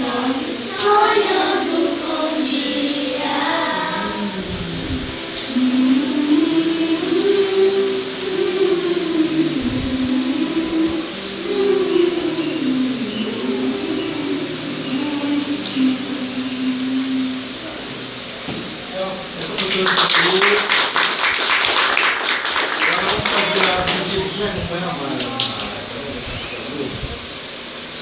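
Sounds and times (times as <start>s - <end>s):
children's choir humming: 0.0s - 28.0s.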